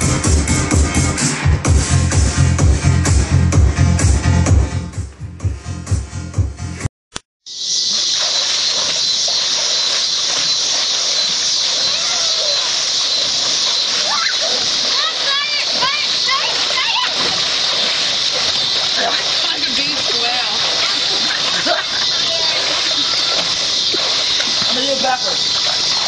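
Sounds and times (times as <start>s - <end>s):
water splashing in pool: 7.8s - 26.0s
children calling out: 11.8s - 12.8s, 13.9s - 17.6s, 21.6s - 23.6s.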